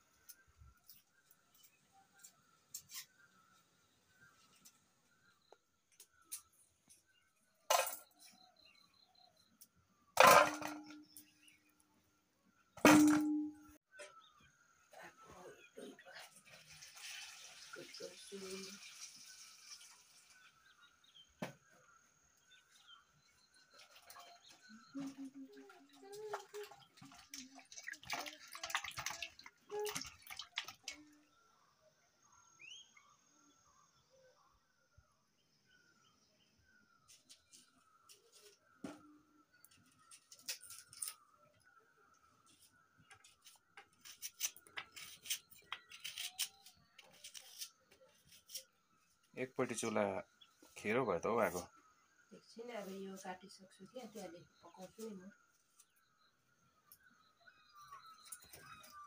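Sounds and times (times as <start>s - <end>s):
water poured into steel bowl: 16.2s - 20.6s, 26.2s - 31.1s
short bird chirps: 32.4s - 34.4s.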